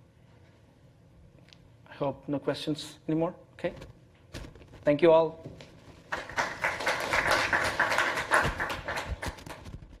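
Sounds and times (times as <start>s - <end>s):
audience applauding: 6.1s - 9.8s.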